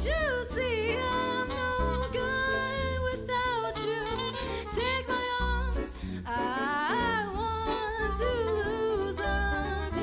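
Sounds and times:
guitar and bass: 0.0s - 10.0s
woman singing jazz: 0.0s - 10.0s.

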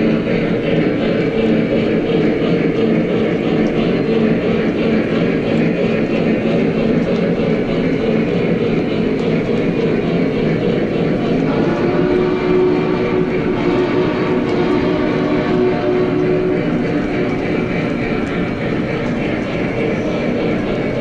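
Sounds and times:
model train wheels rumbling: 0.0s - 21.0s
steady hum: 0.0s - 21.0s.

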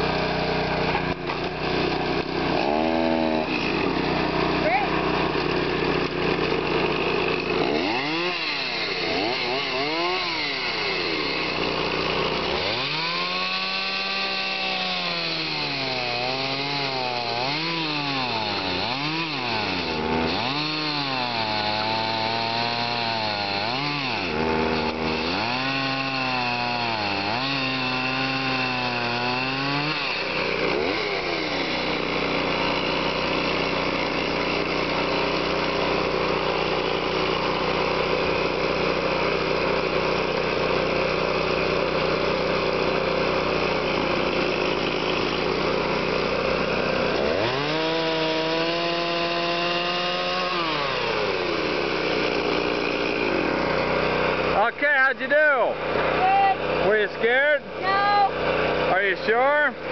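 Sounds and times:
chainsaw cutting through log: 0.0s - 59.9s.

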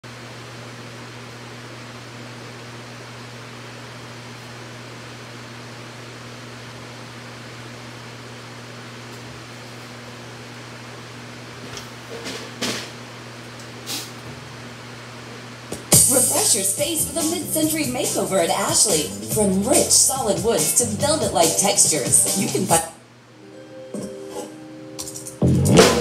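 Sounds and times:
electric fan running: 0.0s - 26.0s.

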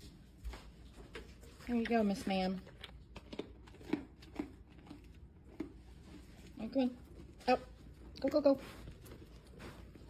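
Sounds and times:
deer chewing crunchy cookie: 0.0s - 10.0s.

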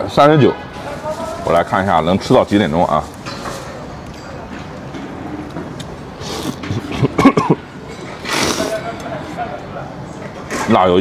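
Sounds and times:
low steady background noise: 0.0s - 11.0s
man eating noodles: 6.2s - 9.0s.

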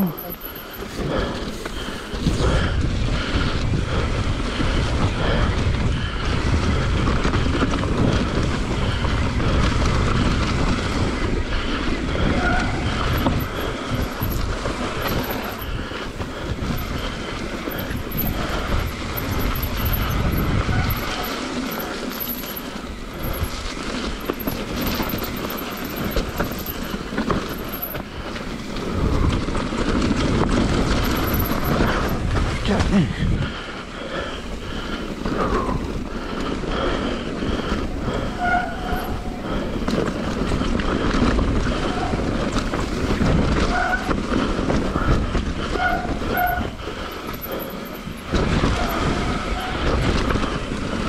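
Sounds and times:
tyre noise on dirt: 0.0s - 33.5s, 34.3s - 51.0s
bike rattling over bumps: 0.0s - 51.0s
wind rumbling on microphone: 0.0s - 51.0s.

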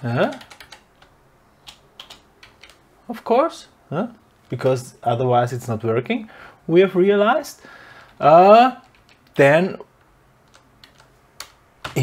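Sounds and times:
computer keyboard keystrokes: 0.2s - 2.8s, 8.8s - 9.4s, 10.4s - 12.0s.

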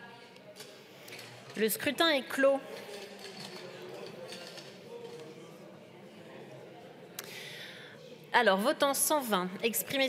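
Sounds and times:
murmur of distant voices: 0.0s - 10.0s.

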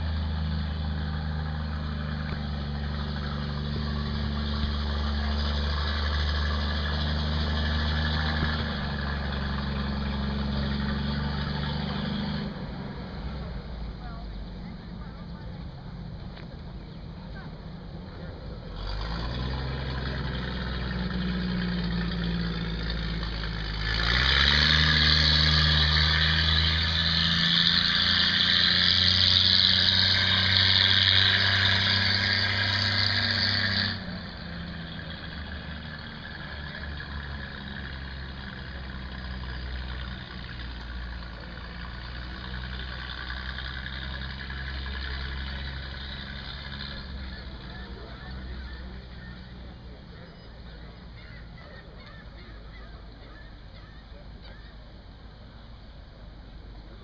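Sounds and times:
vehicle engine pulling away: 0.0s - 57.0s.

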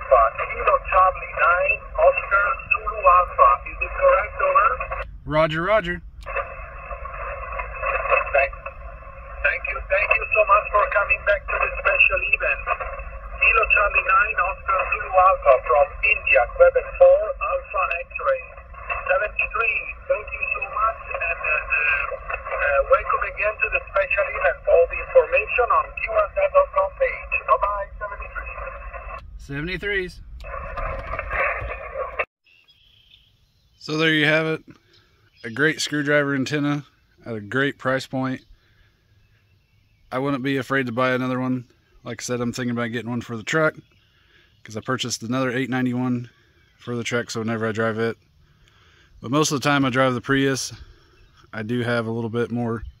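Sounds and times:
low rumble: 0.0s - 32.3s
radio band noise hiss: 0.0s - 32.3s, 35.5s - 39.1s, 40.1s - 53.0s
weak garbled radio voice: 0.0s - 32.3s.

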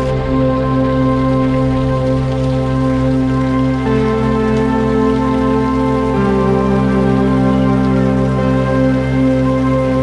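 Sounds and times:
new-age music sustained chords: 0.0s - 10.0s.

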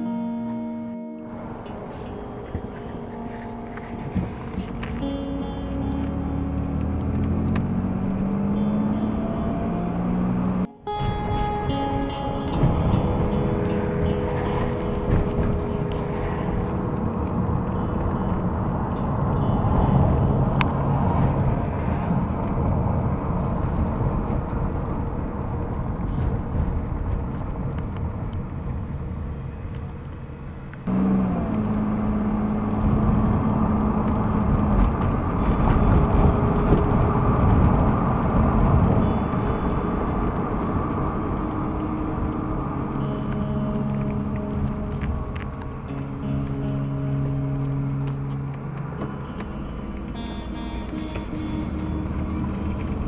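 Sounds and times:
car road and engine noise: 0.0s - 53.0s
low tone: 0.0s - 53.0s.

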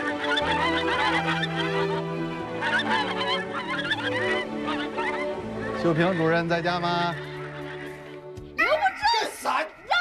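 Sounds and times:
poultry calling: 0.0s - 8.4s
background music: 0.0s - 10.0s.

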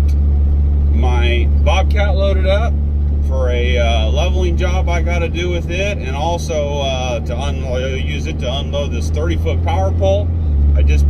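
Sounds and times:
diesel truck engine drone: 0.0s - 11.0s
man's voice: 0.9s - 11.0s.

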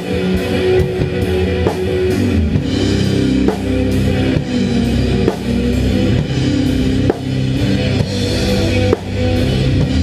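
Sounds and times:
drum and cymbal hits: 0.0s - 10.0s
rock band playing: 0.0s - 10.0s.

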